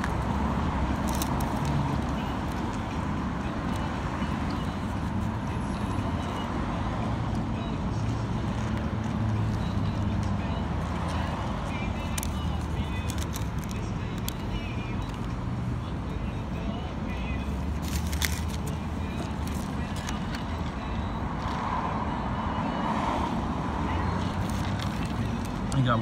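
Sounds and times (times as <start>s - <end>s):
road traffic rumble: 0.0s - 26.0s.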